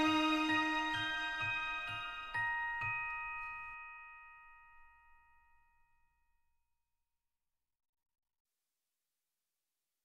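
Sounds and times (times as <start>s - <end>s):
background music beat: 0.0s - 3.6s
bell-like chord ringing: 0.0s - 6.1s.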